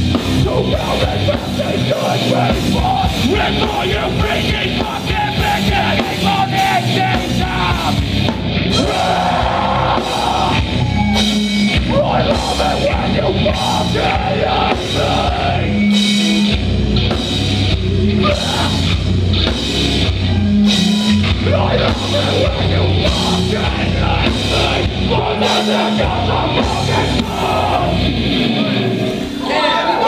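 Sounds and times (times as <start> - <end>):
pounding drums: 0.0 - 28.2
bass guitar: 0.0 - 30.0
distorted guitars: 0.0 - 30.0
shouted vocals: 0.4 - 8.0, 8.7 - 15.8, 18.0 - 19.0, 20.2 - 30.0.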